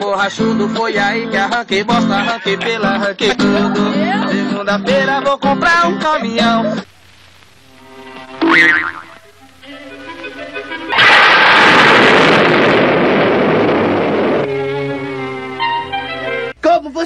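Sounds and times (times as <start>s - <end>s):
springy boing twang: 8.4s - 9.1s
loud explosion blast: 10.9s - 14.7s.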